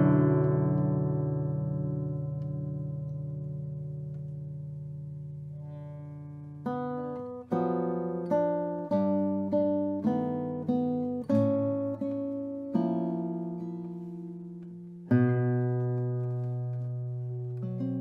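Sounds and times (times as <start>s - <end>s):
classical guitar playing: 0.0s - 18.0s.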